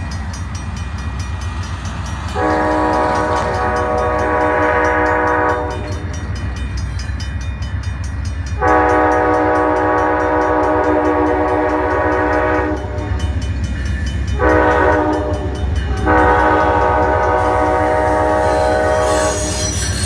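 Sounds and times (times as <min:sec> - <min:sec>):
low rumble of train: 0:00.0 - 0:20.0
locomotive air horn blasts: 0:02.3 - 0:06.1, 0:08.6 - 0:13.2, 0:14.4 - 0:19.8.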